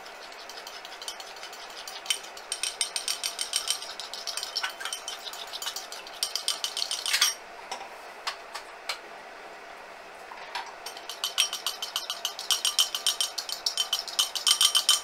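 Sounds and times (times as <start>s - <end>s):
fork clicking against glass bowl: 0.2s - 7.4s, 10.9s - 15.0s.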